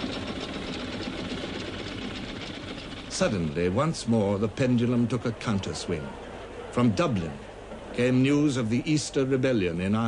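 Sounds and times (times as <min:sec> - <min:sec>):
bus engine clattering: 0:00.0 - 0:06.4.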